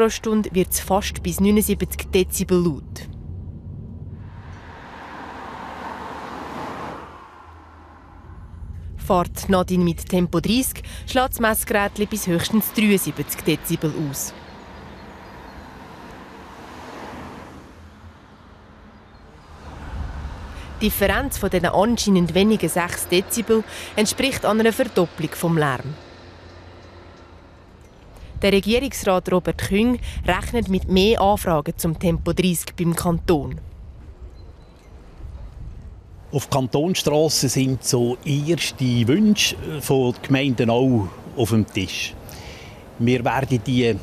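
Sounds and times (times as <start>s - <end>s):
distant street traffic rumble: 0.0s - 44.0s
car driving past: 2.8s - 9.0s, 11.8s - 28.4s.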